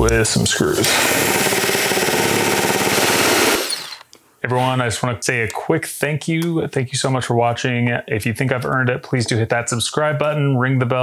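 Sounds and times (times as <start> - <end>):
power drill driving screws: 0.8 - 4.1.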